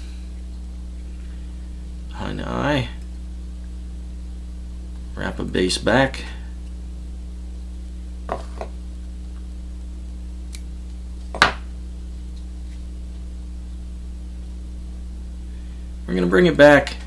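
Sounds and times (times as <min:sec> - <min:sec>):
low electrical hum: 0:00.0 - 0:17.0.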